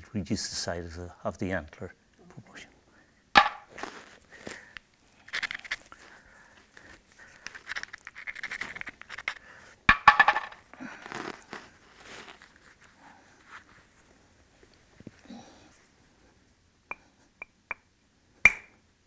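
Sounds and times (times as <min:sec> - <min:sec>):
stones clinking and scraping: 0:05.2 - 0:06.2, 0:06.8 - 0:12.6
stones rattling: 0:07.4 - 0:10.7.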